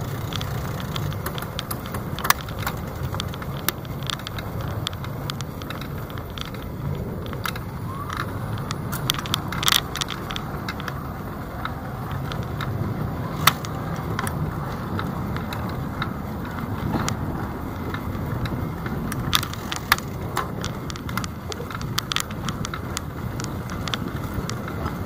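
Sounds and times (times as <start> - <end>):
low rumble of riding: 0.0 - 25.0
sharp rattles and clicks: 0.0 - 25.0.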